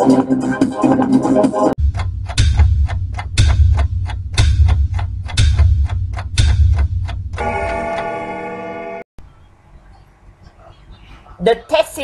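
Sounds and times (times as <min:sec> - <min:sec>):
electronic music: 0:00.0 - 0:09.0
heavy low thud: 0:01.8 - 0:07.4
clock-like ticking: 0:01.8 - 0:08.1.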